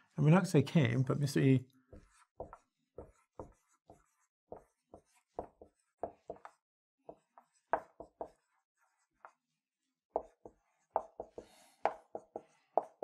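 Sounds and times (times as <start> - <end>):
marker squeaking on whiteboard: 1.8 - 13.0.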